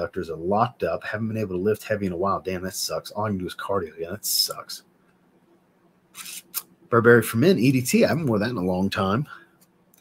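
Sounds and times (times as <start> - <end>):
man speaking: 0.0 - 4.9, 6.2 - 9.4
short hiss: 6.1 - 6.7.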